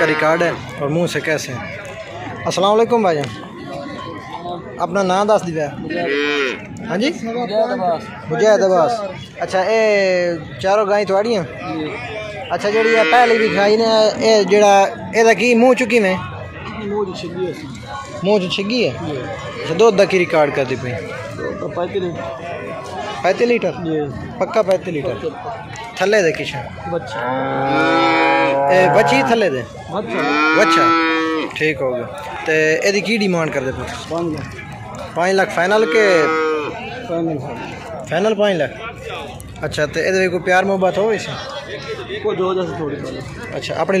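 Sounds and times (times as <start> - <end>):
cow mooing: 6.0 - 6.6, 12.7 - 13.7, 27.2 - 29.4, 30.1 - 31.6, 35.8 - 36.8.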